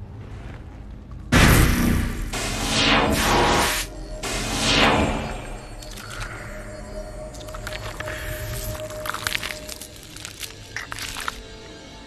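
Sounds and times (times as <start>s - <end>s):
low rumble: 0.0s - 10.4s
film score music: 0.0s - 12.0s
sudden loud hit: 1.3s - 5.6s.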